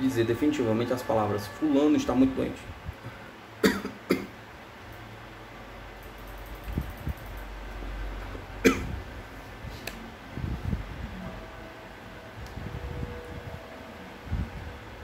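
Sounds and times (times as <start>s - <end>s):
person coughing: 3.6s - 4.3s, 8.6s - 8.9s.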